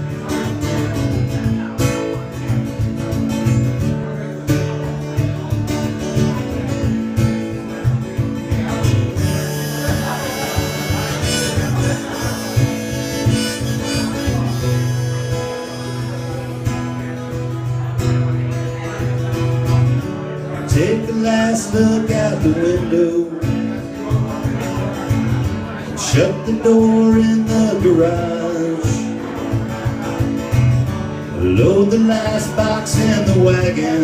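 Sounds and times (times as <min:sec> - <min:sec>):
acoustic guitar strumming: 0:00.0 - 0:34.0
harmonica long held notes: 0:09.2 - 0:17.4.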